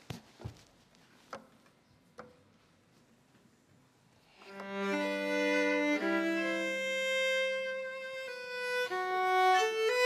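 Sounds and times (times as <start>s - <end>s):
footsteps on stage floor: 0.0s - 1.7s.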